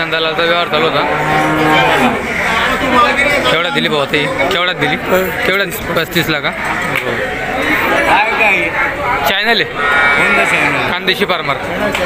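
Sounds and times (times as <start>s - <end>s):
cow mooing: 0.6s - 2.5s, 9.6s - 11.1s.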